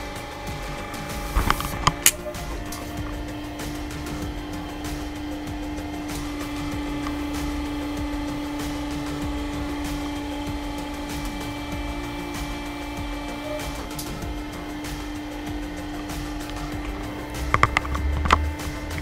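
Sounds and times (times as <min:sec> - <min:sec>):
hydraulic power unit humming: 0:00.0 - 0:19.0
irregular clicks and knocks: 0:00.0 - 0:19.0.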